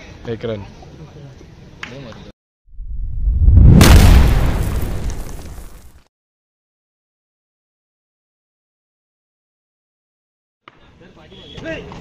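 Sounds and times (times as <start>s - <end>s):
deep boom sound effect: 2.8s - 5.9s.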